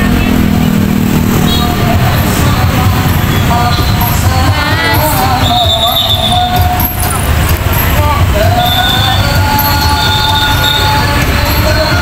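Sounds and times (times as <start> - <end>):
motorbike and car engines: 0.0 - 12.0.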